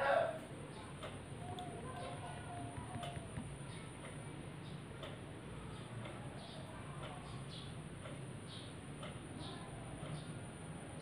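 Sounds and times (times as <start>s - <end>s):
faint regular ticks: 0.7s - 10.6s.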